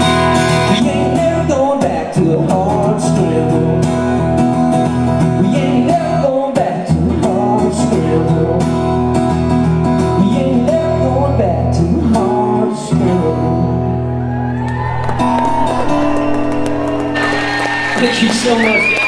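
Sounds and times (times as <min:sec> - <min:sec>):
strummed acoustic guitar: 0:00.0 - 0:14.3.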